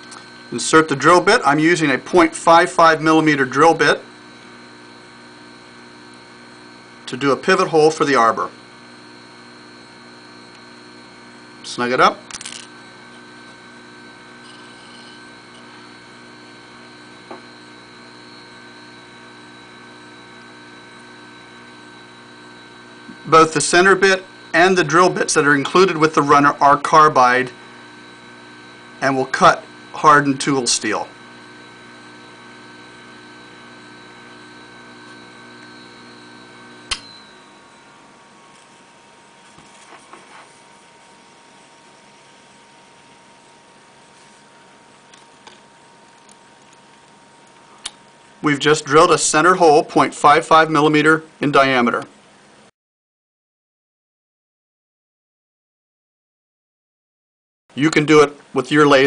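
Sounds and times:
lathe motor humming: 0.0s - 50.4s
sharp click: 36.9s - 37.2s.

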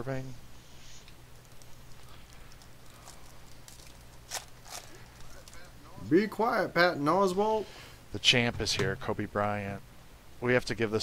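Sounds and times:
steady electrical hum: 0.0s - 11.0s
trading cards clicking and rustling: 1.3s - 5.8s.

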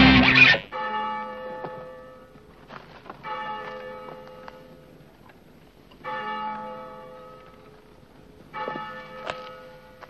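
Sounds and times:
large bell tolling: 0.0s - 1.6s.

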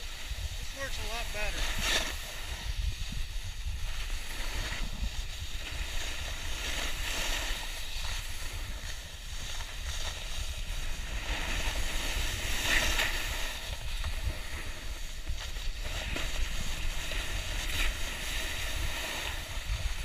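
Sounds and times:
wind buffeting microphone: 0.0s - 7.0s
edges scraping on snow: 0.2s - 20.0s.

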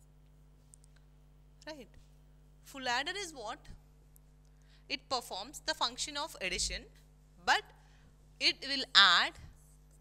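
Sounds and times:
low electrical hum: 0.0s - 10.0s
woman speaking: 1.6s - 2.0s, 2.7s - 3.8s, 4.9s - 7.8s, 8.4s - 9.5s.

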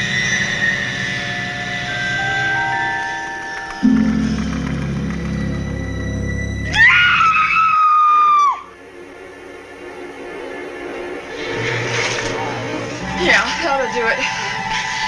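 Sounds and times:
horror film score drones: 0.0s - 15.0s
high-pitched scream: 6.7s - 8.7s.

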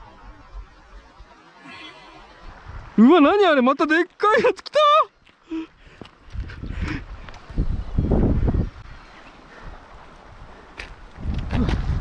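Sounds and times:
wind buffeting microphone: 5.8s - 12.0s.

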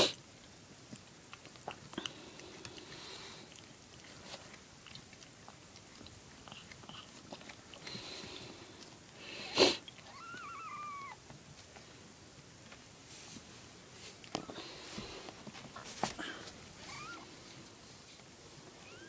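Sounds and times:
cat licking and chewing: 0.1s - 9.2s, 9.8s - 11.1s
newborn kitten mewing: 10.0s - 11.2s, 16.8s - 17.3s.

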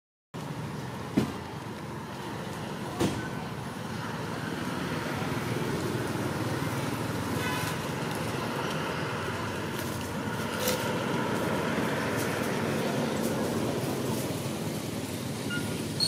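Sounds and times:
outdoor background rumble: 0.4s - 16.0s.

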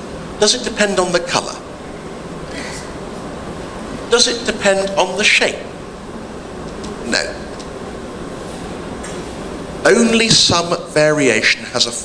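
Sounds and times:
room noise hum: 0.0s - 12.0s
man speaking into a microphone: 0.4s - 1.6s, 4.1s - 5.7s, 7.0s - 7.5s, 9.8s - 12.0s.

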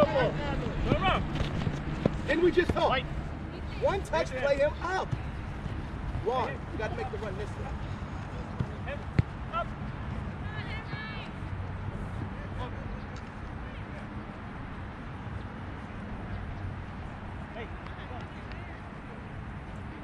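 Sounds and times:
soccer ball kicked: 1.3s - 2.9s, 5.0s - 6.6s, 8.4s - 11.4s.

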